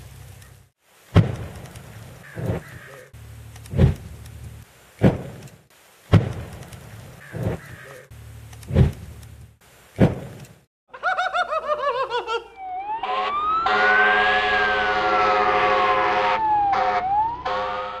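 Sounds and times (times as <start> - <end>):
dull thumps: 6.1 - 6.6
emergency vehicle siren: 12.5 - 18.0
air horn blasts: 13.0 - 18.0.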